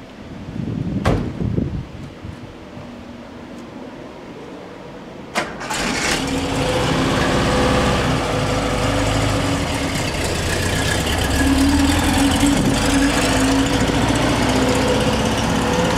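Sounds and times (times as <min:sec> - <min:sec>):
car engine idling: 0:05.6 - 0:15.9.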